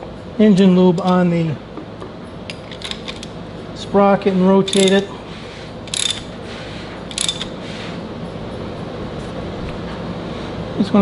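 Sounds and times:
ratchet wrench clicking: 4.7 - 5.1, 5.9 - 6.3, 7.1 - 7.6.

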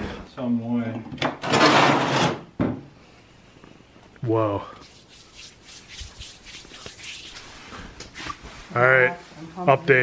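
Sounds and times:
hand rubbing on microphone: 4.8 - 8.6.

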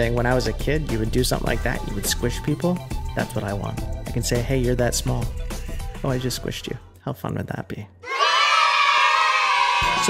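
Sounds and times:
children cheering and shouting: 8.0 - 10.0.

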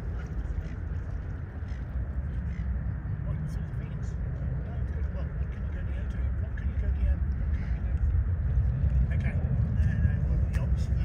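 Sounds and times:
faint bird calls: 0.0 - 3.2
distant jet airliner rumble: 0.0 - 11.0.

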